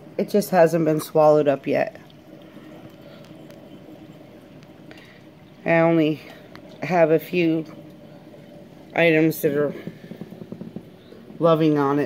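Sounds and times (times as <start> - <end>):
faint pump hum: 0.0 - 12.0
water circulating: 0.0 - 12.0.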